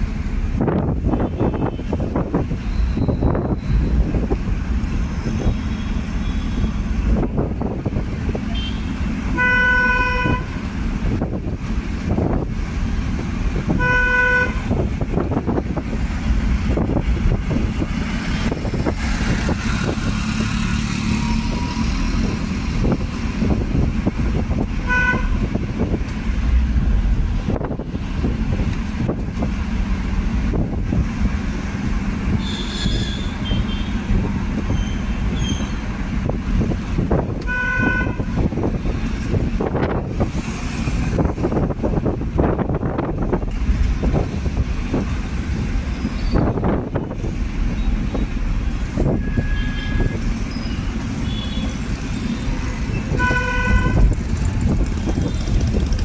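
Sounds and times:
engine and road rumble: 0:00.0 - 0:56.0
vehicle horns tooting: 0:01.1 - 0:02.0, 0:05.2 - 0:06.9, 0:08.5 - 0:10.6, 0:13.7 - 0:14.8, 0:24.8 - 0:25.5, 0:32.4 - 0:34.1, 0:37.4 - 0:38.5, 0:49.1 - 0:54.2.

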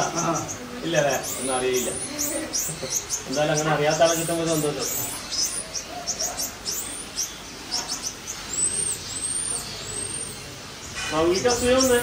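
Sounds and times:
monkey high-pitched chirps: 0:00.0 - 0:03.3.

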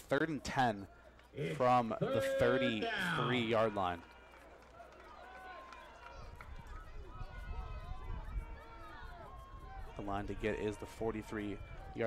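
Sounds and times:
distant crowd murmur: 0:00.0 - 0:12.0.

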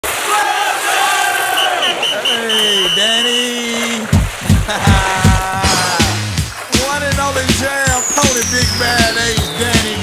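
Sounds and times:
voices shouting: 0:00.1 - 0:03.6
short high electronic beeps: 0:07.9 - 0:09.7.

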